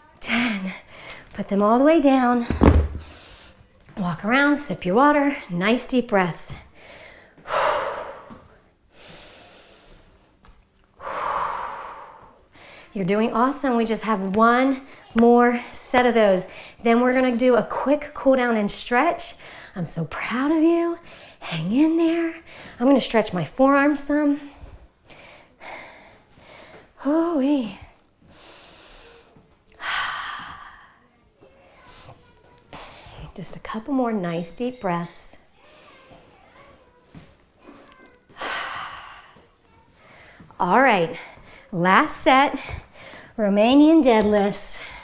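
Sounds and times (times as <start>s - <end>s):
woman breathing deeply: 6.7s - 10.3s, 11.0s - 13.0s, 42.7s - 43.4s.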